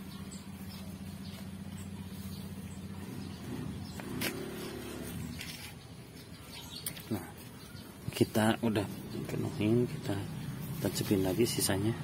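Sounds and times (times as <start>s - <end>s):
engine humming: 0.0s - 12.0s.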